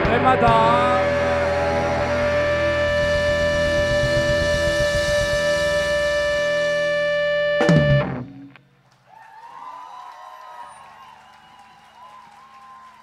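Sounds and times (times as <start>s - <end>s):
bass and drums rumble: 0.0s - 8.5s
band holding high note: 0.0s - 8.6s.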